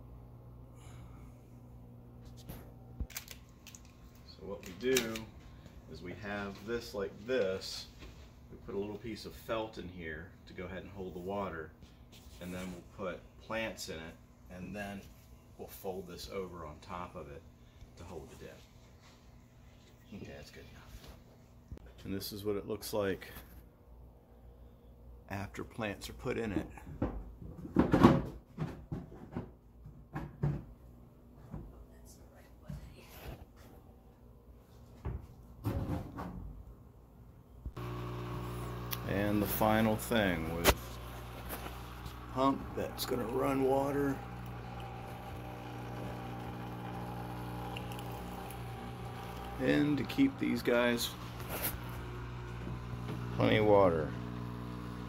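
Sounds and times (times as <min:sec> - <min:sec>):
handling clicks and crackles: 0:03.0 - 0:05.3.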